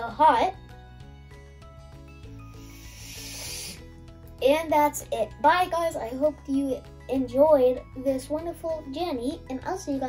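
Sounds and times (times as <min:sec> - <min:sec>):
background music: 0:00.0 - 0:10.0
child sniffing: 0:02.4 - 0:04.0.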